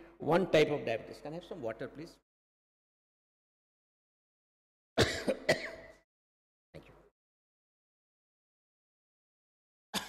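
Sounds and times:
man coughing into microphone: 0:05.0 - 0:06.0.

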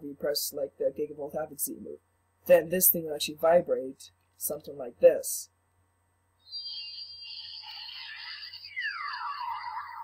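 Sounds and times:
high warbling electronic tones: 0:06.4 - 0:10.0.

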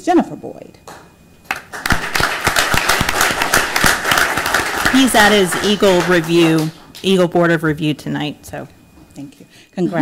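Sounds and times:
audience applauding: 0:01.5 - 0:06.9.

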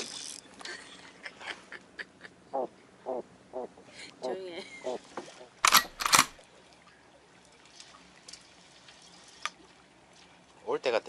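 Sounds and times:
faint boat deck ambience: 0:00.0 - 0:11.0
camera shutter clicks: 0:05.6 - 0:06.4.

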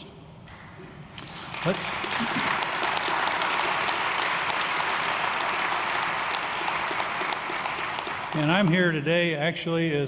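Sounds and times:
audience applauding: 0:01.1 - 0:09.4.

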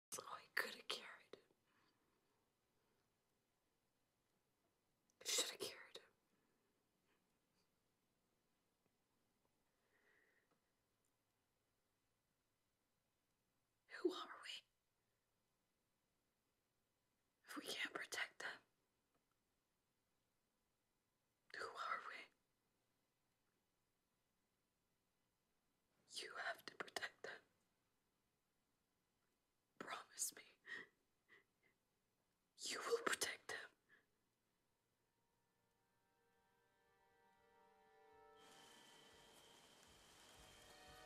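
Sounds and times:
person whispering: 0:00.1 - 0:01.5, 0:05.2 - 0:06.2, 0:13.9 - 0:14.7, 0:17.5 - 0:18.7, 0:21.5 - 0:22.4, 0:26.1 - 0:27.5, 0:29.8 - 0:30.9, 0:32.6 - 0:33.9.

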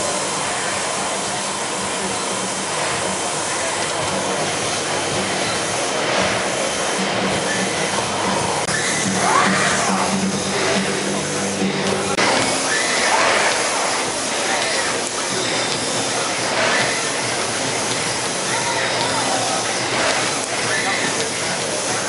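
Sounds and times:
crowd voices: 0:00.0 - 0:22.0.

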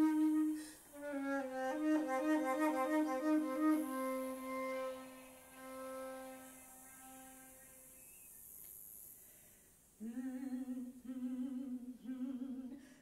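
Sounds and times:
woman humming: 0:00.0 - 0:04.6, 0:10.0 - 0:12.8
low flute note: 0:00.0 - 0:08.3.

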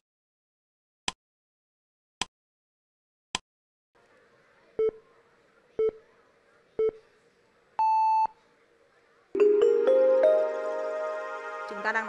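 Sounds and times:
countdown timer beeps: 0:09.4 - 0:11.2.

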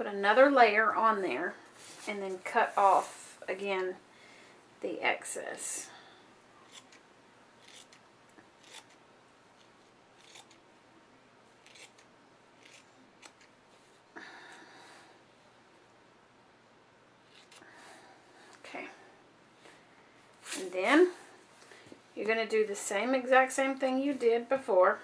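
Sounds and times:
scissors snipping: 0:07.6 - 0:08.0, 0:08.6 - 0:09.0, 0:09.6 - 0:10.6, 0:11.6 - 0:13.5.

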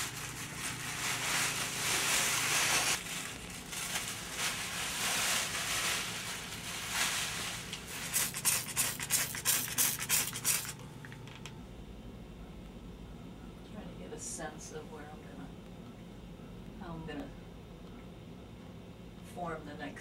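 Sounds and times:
plastic sheeting rustling and crinkling: 0:00.0 - 0:10.8.

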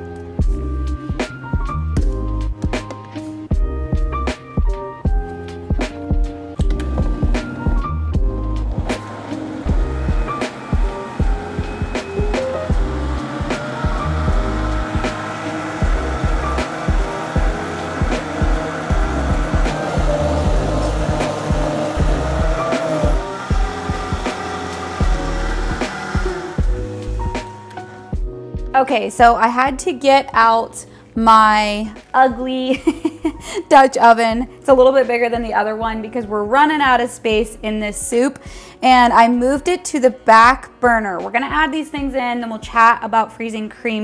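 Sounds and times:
background music with steady beat: 0:00.0 - 0:29.9
countertop blender running: 0:06.6 - 0:27.4.

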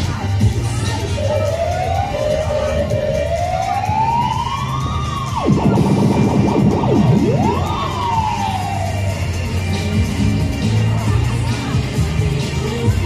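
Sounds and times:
loud dance music: 0:00.0 - 0:13.0
siren-like wailing sound effect: 0:01.0 - 0:09.3.

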